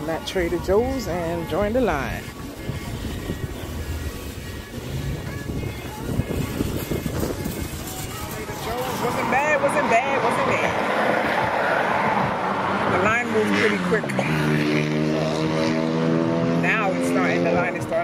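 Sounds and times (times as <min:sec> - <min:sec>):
music with singing voice: 0:00.0 - 0:10.7
traffic rumble: 0:00.0 - 0:18.0
wind on microphone: 0:01.0 - 0:16.0.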